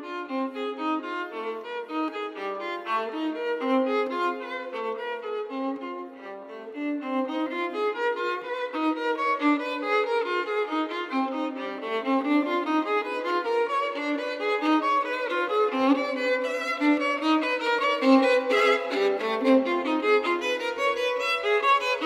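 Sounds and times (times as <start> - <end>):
solo violin playing: 0.0 - 22.0.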